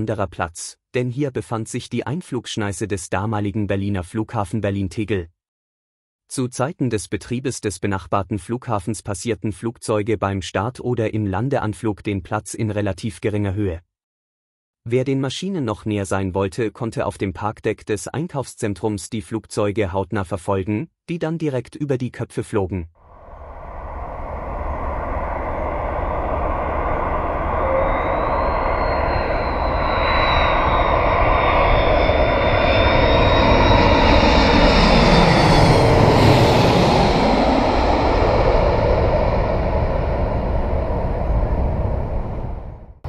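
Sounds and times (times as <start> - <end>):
airliner passing overhead: 23.1 - 42.9
high engine whine: 23.1 - 43.0.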